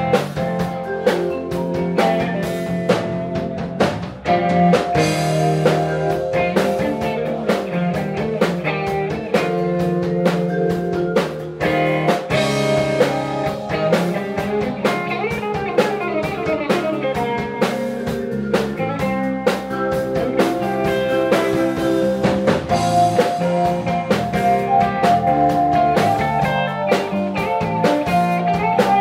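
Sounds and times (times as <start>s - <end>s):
drum kit: 0.0s - 29.0s
electric guitar: 0.0s - 29.0s.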